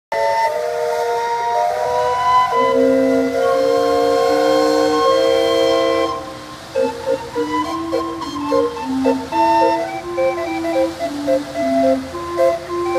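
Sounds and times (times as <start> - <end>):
steam calliope playing: 0.1 - 12.9.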